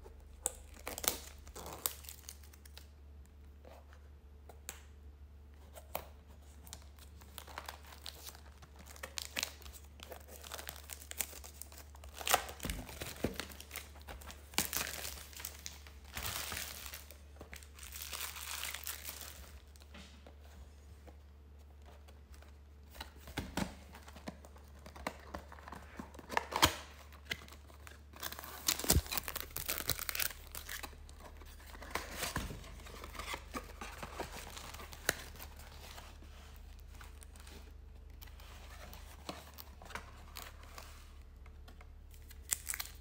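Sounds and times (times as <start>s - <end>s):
plastic shrink-wrap crinkling: 6.8s - 19.8s, 24.8s - 37.8s, 42.1s - 43.0s.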